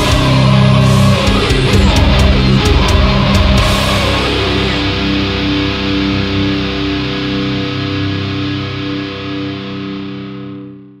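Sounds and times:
distorted electric guitar chord: 0.0 - 11.0.

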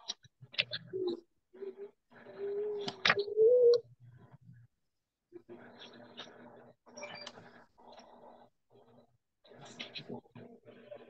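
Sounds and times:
bird cooing: 0.7 - 3.9.

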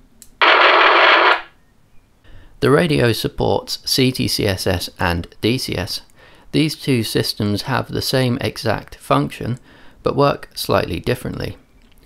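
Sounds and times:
radio static hiss: 0.4 - 1.5.

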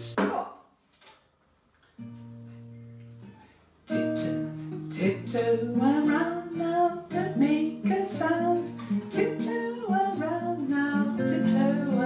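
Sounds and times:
classical guitar chord strummed: 3.9 - 12.0.

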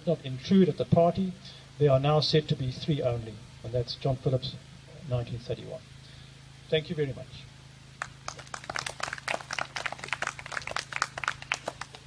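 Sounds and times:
audience clapping: 8.0 - 12.0.

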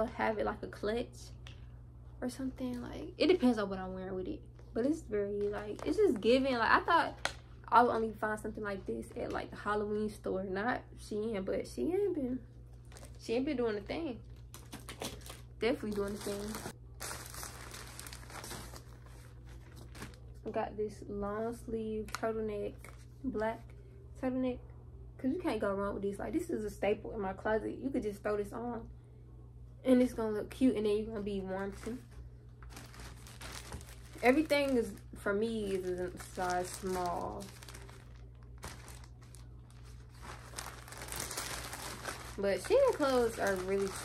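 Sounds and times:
steady low hum: 0.0 - 44.0
plastic packaging crinkling: 4.6 - 9.5, 12.7 - 13.3, 14.2 - 20.4, 31.6 - 44.0.

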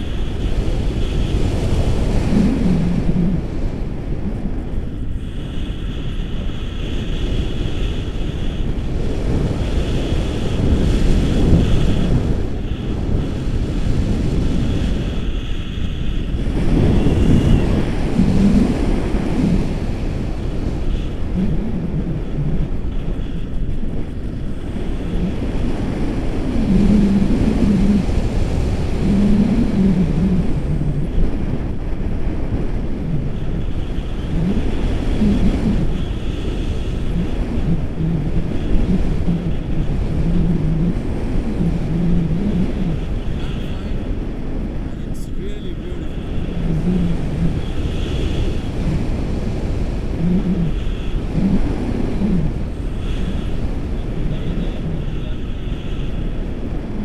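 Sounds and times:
wind buffeting microphone: 0.0 - 57.0
muffled voices talking: 43.0 - 44.2, 44.8 - 46.4.

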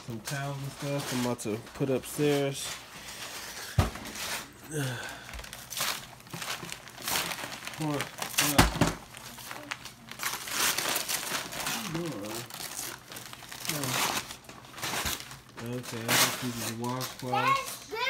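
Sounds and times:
wrapping paper crinkling: 0.2 - 18.0.

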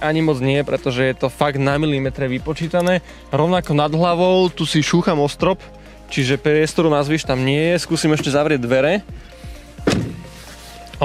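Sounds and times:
car door closing with thunk: 9.8 - 10.4.

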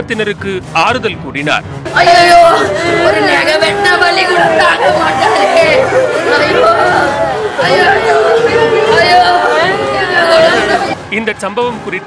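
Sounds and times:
crowd chatter: 1.9 - 11.1
woman wailing: 2.0 - 11.0.

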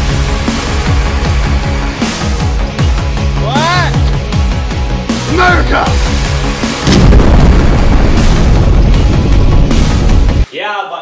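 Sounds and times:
dramatic film music: 0.0 - 10.5
loud sustained explosion: 6.8 - 10.4.

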